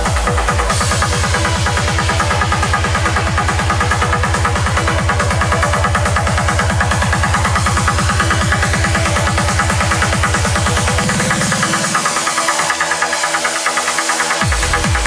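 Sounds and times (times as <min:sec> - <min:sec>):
rolling bassline: 0:00.0 - 0:13.7, 0:14.3 - 0:15.0.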